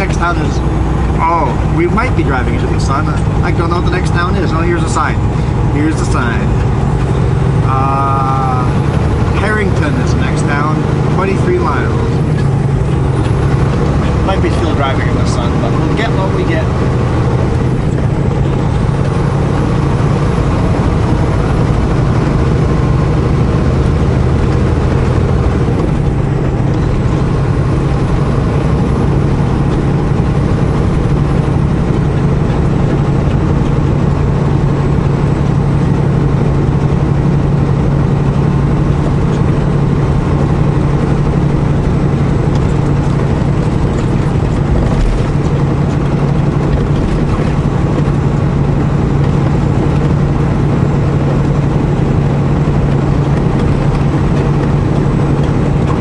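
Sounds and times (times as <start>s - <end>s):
tyre road noise: 0.0s - 56.0s
vehicle engine drone: 0.0s - 56.0s.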